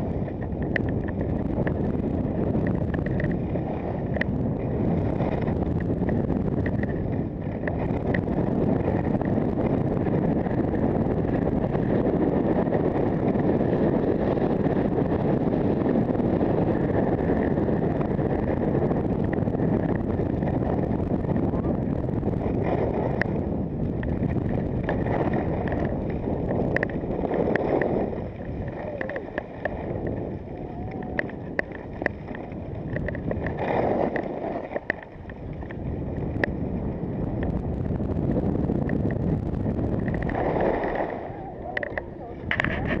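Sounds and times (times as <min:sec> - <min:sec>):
skis scraping on snow: 0:00.0 - 0:37.7, 0:38.4 - 0:41.3
wind rushing over microphone: 0:00.0 - 0:43.0.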